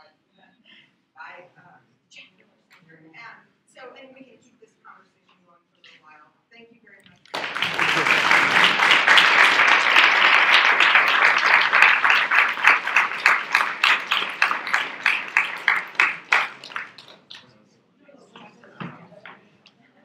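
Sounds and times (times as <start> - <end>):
audience applauding: 7.3 - 17.4.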